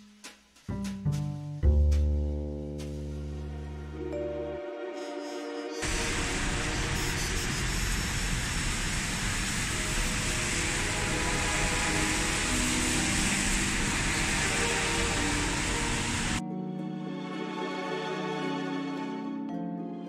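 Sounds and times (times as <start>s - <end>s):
soft music with held tones: 0.0s - 7.6s, 9.7s - 20.0s
rain: 5.8s - 16.4s
traffic on wet street: 5.8s - 16.4s.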